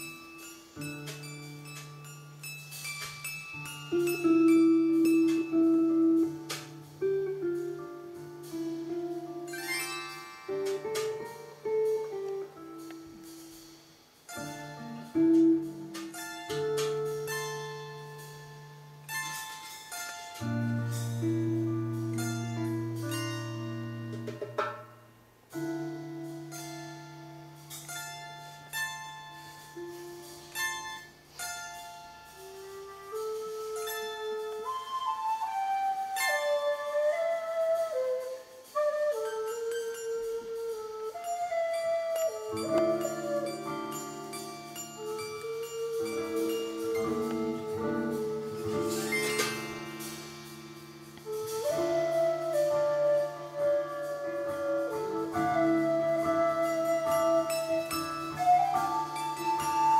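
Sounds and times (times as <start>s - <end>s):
flute melody: 0.0s - 13.7s, 14.3s - 24.4s, 31.8s - 59.9s
darbuka strokes: 0.0s - 59.9s.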